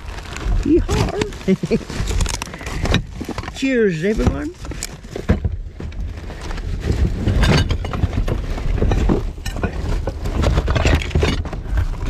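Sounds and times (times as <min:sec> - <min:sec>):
rubbish rustling and clattering: 0:00.0 - 0:12.0.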